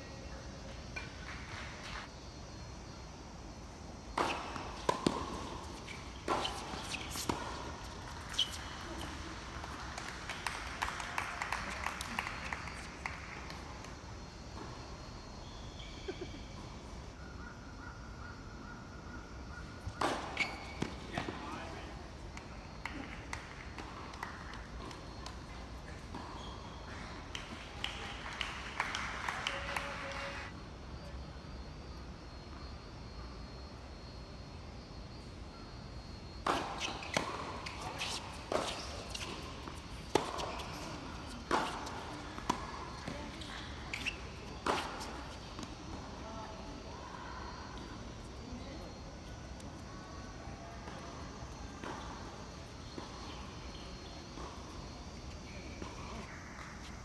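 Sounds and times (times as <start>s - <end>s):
tennis ball bouncing on court: 4.1s - 11.0s, 19.8s - 21.5s, 22.3s - 28.5s, 36.4s - 46.1s, 50.8s - 56.0s
voices: 15.4s - 31.7s, 36.4s - 57.0s.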